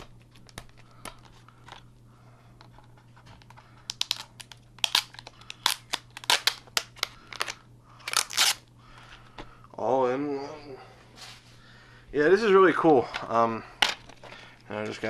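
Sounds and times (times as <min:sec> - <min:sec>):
plastic wrap crinkling and tearing: 0:03.9 - 0:08.6.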